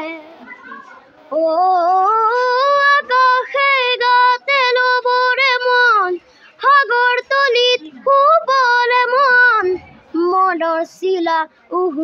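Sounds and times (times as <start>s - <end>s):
boy singing unaccompanied: 0.0s - 12.0s
short breaths: 6.2s - 6.6s.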